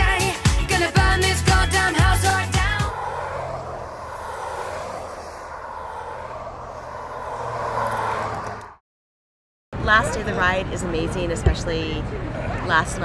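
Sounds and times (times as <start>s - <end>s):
rushing outdoor noise: 1.7s - 8.8s.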